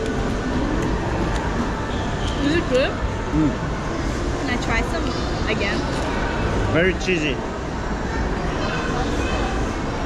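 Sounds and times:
faint distant voices: 0.0s - 10.0s
food court din: 0.0s - 10.0s.

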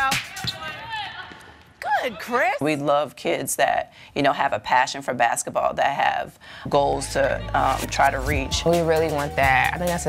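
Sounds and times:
voices echoing: 0.0s - 10.0s.

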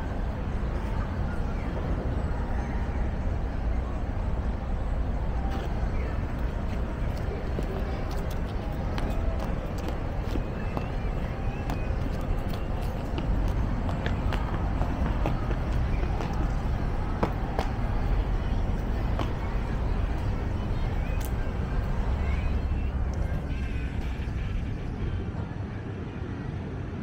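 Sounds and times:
distant road traffic rumble: 0.0s - 27.0s
faint indistinct voices: 0.0s - 27.0s.

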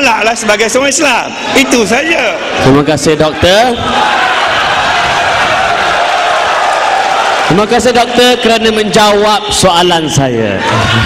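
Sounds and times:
crowd voices: 1.2s - 8.8s.

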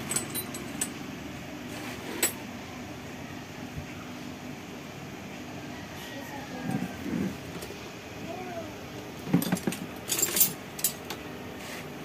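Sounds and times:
metal hand tools clinking: 0.0s - 0.9s, 9.5s - 11.0s.

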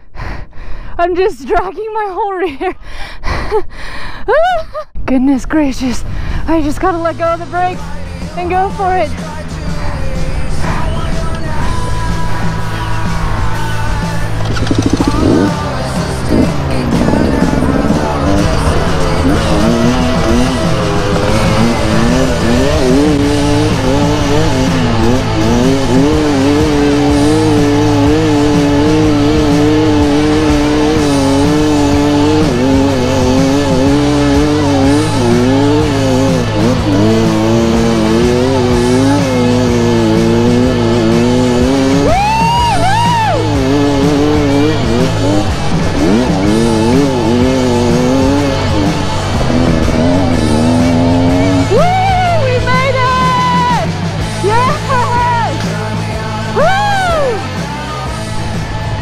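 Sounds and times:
dirt bike engine revving: 6.8s - 59.0s.

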